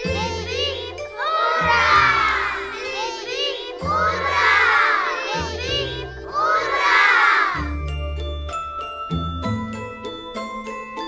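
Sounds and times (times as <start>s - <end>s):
children shouting and cheering: 0.0s - 7.8s
background music: 0.0s - 11.0s.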